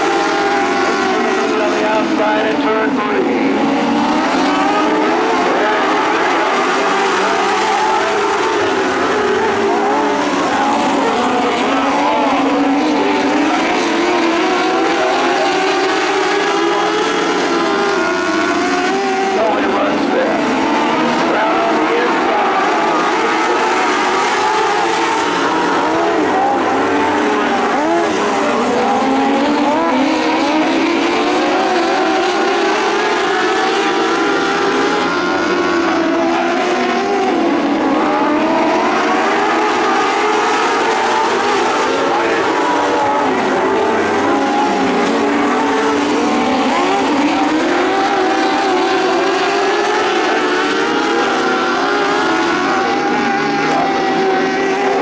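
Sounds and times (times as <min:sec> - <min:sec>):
race car engines accelerating: 0:00.0 - 0:55.0.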